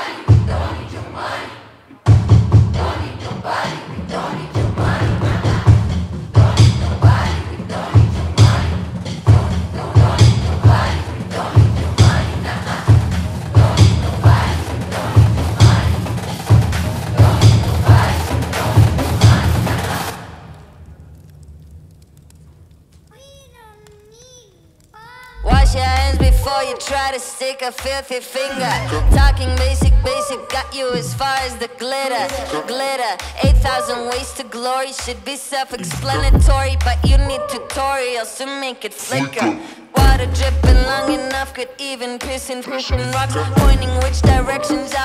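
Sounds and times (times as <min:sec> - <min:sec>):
heavy bass and drum beat: 0:04.6 - 0:20.2, 0:25.4 - 0:27.1, 0:28.6 - 0:31.6, 0:33.4 - 0:33.8, 0:35.8 - 0:37.4, 0:39.2 - 0:41.5, 0:42.9 - 0:45.0
electronic pop music: 0:25.4 - 0:38.1, 0:38.9 - 0:45.0.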